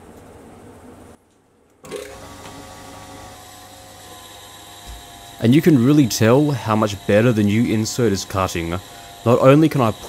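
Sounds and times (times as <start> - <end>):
metal lathe whining: 1.9 - 10.0.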